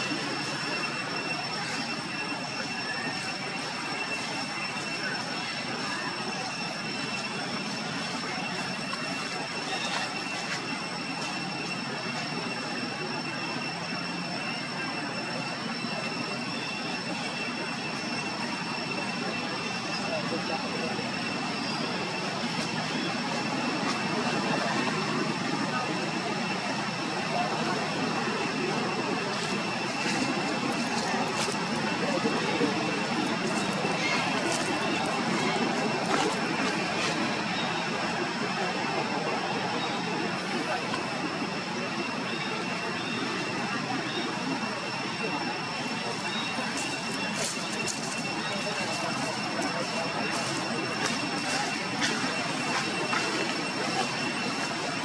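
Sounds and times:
indistinct voices: 0.0s - 55.0s.

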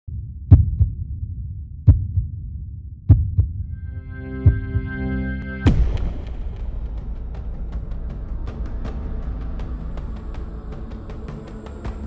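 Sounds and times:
heartbeat thumps: 0.1s - 5.0s
low rumbling drone: 3.6s - 12.0s
held musical chord: 3.8s - 7.0s.

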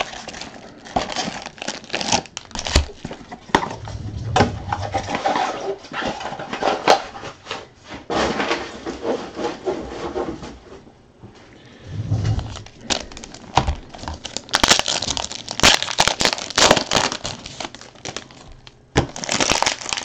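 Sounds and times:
cardboard rustling and scraping: 2.9s - 10.8s, 11.9s - 14.2s.

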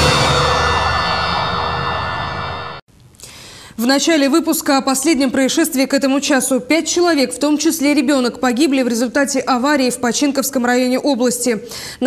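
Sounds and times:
loud sustained music chord: 0.0s - 2.8s.

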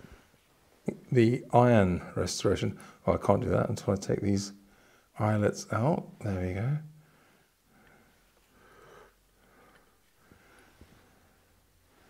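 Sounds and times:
faint nasal breathing: 4.6s - 5.2s, 7.0s - 12.0s.

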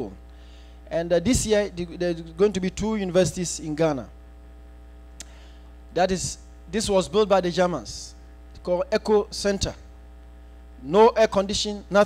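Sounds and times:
electrical mains hum: 0.0s - 12.0s
small click: 5.2s - 5.4s.

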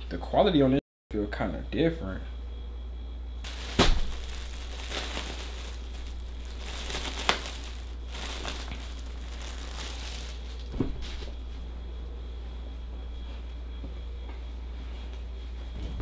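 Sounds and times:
plastic bag crinkling: 3.5s - 10.8s.

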